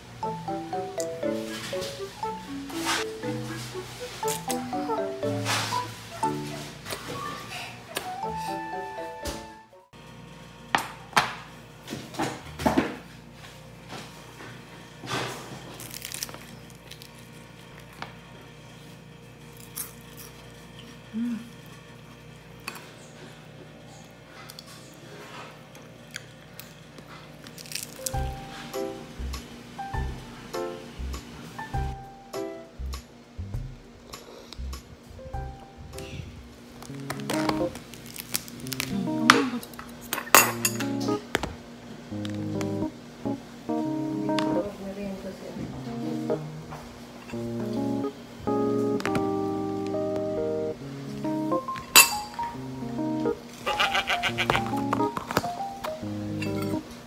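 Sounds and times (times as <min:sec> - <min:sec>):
background music with plucked notes: 0:00.0 - 0:06.8, 0:07.9 - 0:09.9, 0:28.1 - 0:33.8, 0:34.6 - 0:36.1, 0:36.9 - 0:37.8, 0:38.6 - 0:39.6, 0:40.5 - 0:41.3, 0:42.2 - 0:44.7, 0:45.7 - 0:46.7, 0:47.3 - 0:57.0.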